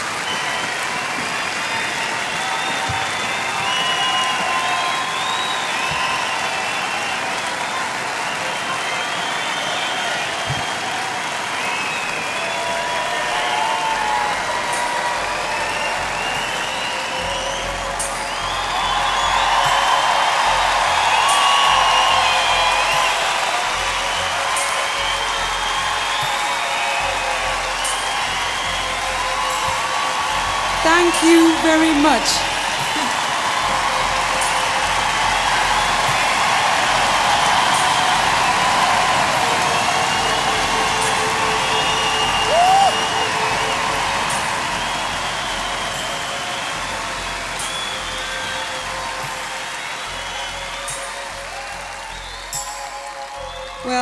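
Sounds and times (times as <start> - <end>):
crowd applauding and cheering: 0.0 - 54.0
shrill whistles: 0.0 - 54.0.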